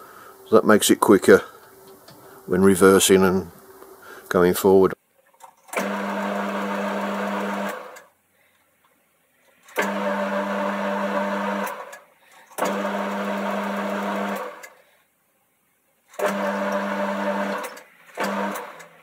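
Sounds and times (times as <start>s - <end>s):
lathe humming: 5.8s - 8.0s, 9.8s - 11.9s, 12.6s - 14.6s.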